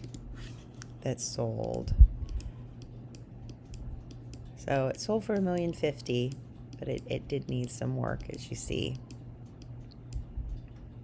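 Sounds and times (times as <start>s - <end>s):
computer mouse clicks: 0.0s - 4.5s, 5.3s - 11.0s
low steady hum: 0.0s - 11.0s.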